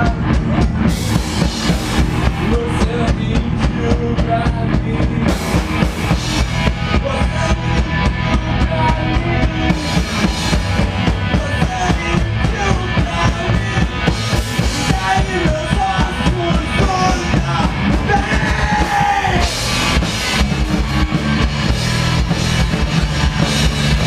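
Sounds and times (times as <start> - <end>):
drum kit beating fast rhythm: 0.0 - 24.0
electric guitar: 0.0 - 24.0.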